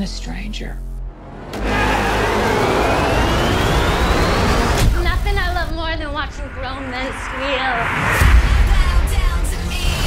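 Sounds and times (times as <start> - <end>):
rush of noise riser: 1.6 - 5.7
thin whine rising in pitch: 2.1 - 5.0.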